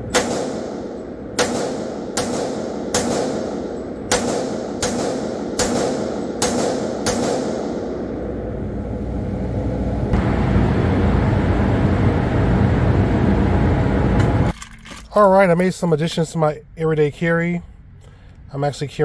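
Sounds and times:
steady noise: 0.0 - 14.5
low rumble: 0.0 - 14.6
handgun shots with echo: 0.1 - 8.2.

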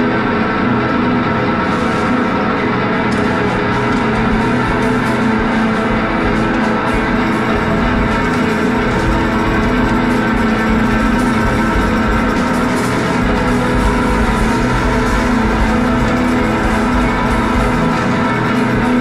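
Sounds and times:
live band playing: 3.0 - 19.0.

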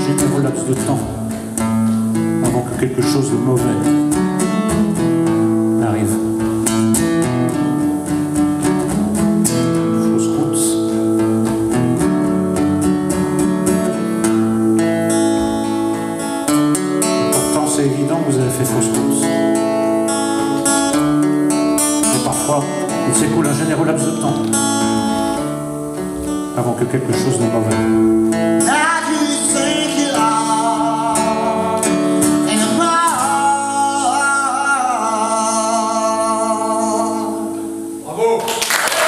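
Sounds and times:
acoustic guitar strumming chords: 0.0 - 38.6.

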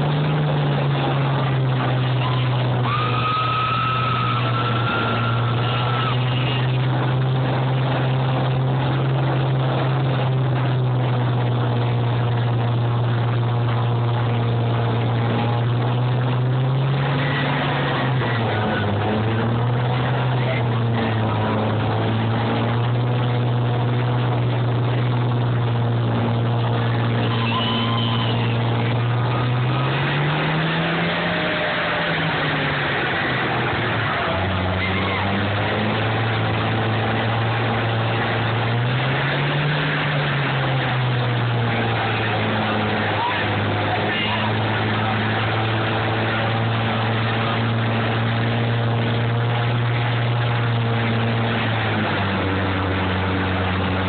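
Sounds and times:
diesel engines running: 0.0 - 54.0.

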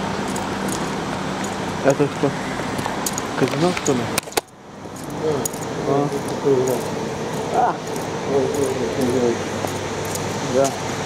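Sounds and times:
indistinct talking voices: 1.6 - 4.3, 4.9 - 11.0.

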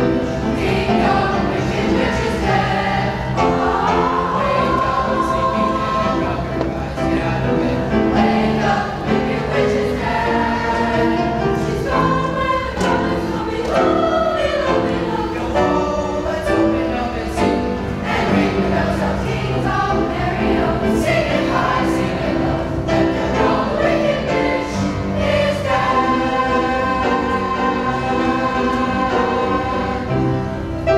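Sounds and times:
children's choir singing: 0.0 - 30.9.

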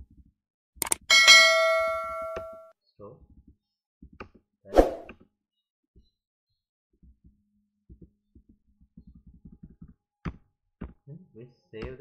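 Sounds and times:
bell ding: 0.8 - 2.7.

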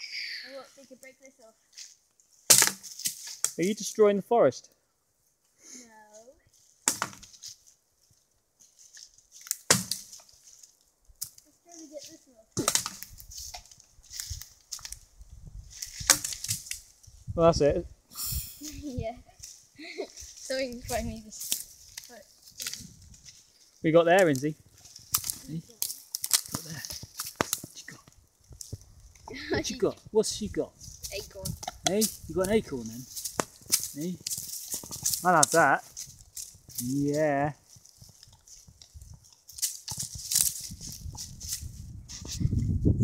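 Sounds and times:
stick cracking against tree: 1.8 - 3.6, 6.6 - 7.7, 8.6 - 15.1, 15.7 - 17.0, 20.2 - 23.5, 24.1 - 29.3, 30.8 - 37.1, 37.7 - 42.5
knocks and crackling wood: 2.4 - 3.6, 6.7 - 7.6, 8.7 - 15.0, 15.7 - 16.9, 24.1 - 29.6, 30.8 - 36.9, 37.6 - 42.5.

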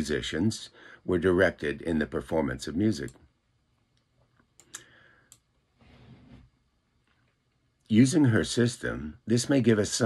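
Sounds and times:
faint sharp clicks: 3.9 - 5.5.

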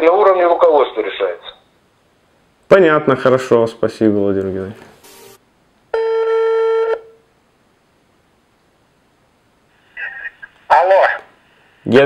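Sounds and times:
telephone ringback tone: 5.0 - 5.4, 6.0 - 7.1.

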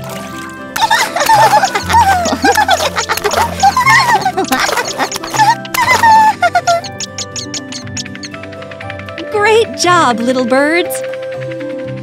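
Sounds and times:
bouncy background music: 0.0 - 12.0
cartoon bird chirps and squeals: 3.2 - 8.3.

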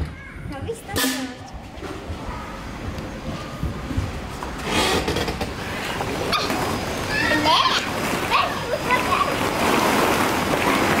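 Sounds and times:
children shouting and chattering: 0.0 - 4.2, 5.0 - 10.3
children squealing: 6.3 - 9.4.

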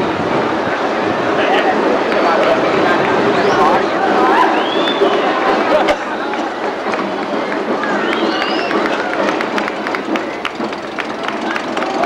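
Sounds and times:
crowd voices calling out: 0.0 - 12.0.

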